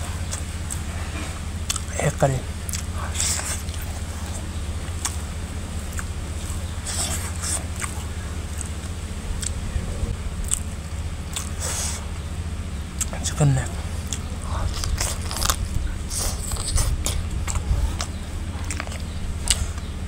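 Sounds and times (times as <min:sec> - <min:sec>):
close-up chewing: 0:00.0 - 0:20.0
steady low hum: 0:00.0 - 0:20.0
wet lip smacks: 0:02.6 - 0:03.9, 0:05.9 - 0:06.1.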